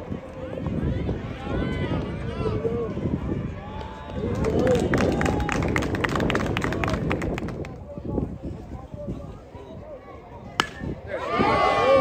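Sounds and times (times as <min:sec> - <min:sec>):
spectators talking faintly: 0:00.0 - 0:12.0
bat cracking a ball: 0:10.6 - 0:11.0.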